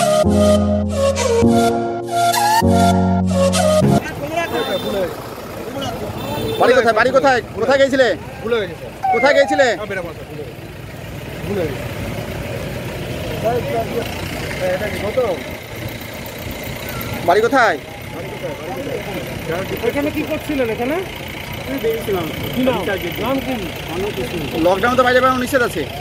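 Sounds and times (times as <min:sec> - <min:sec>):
vehicle engine idling: 0:03.2 - 0:26.0
voices talking: 0:03.8 - 0:26.0.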